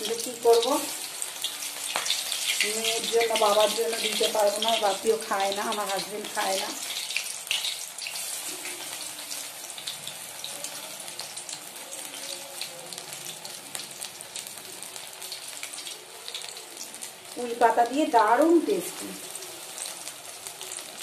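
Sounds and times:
deep-frying sizzle in oil: 0:00.0 - 0:21.0.

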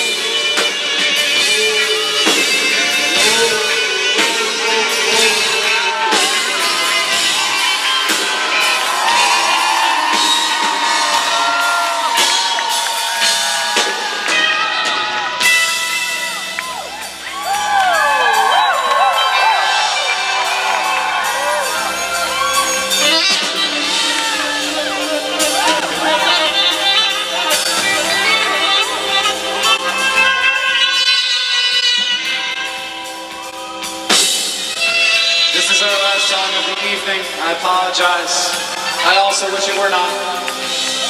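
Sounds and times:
live rock band playing: 0:00.0 - 0:41.0
crowd whooping and cheering: 0:00.1 - 0:41.0.

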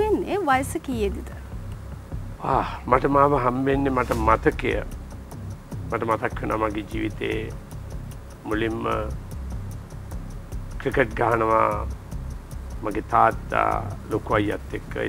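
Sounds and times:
clock-like ticking: 0:00.0 - 0:15.0
quiet background music: 0:00.0 - 0:15.0
man speaking: 0:02.4 - 0:04.9, 0:05.8 - 0:07.6, 0:08.4 - 0:09.2, 0:10.8 - 0:11.9, 0:12.8 - 0:15.0.

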